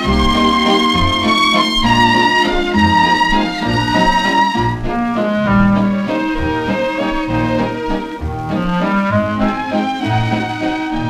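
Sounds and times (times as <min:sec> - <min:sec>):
swing dance orchestra: 0:00.0 - 0:11.0.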